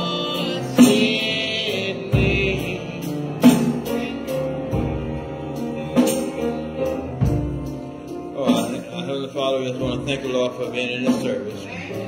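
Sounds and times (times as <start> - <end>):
gospel music: 0.0 - 12.0.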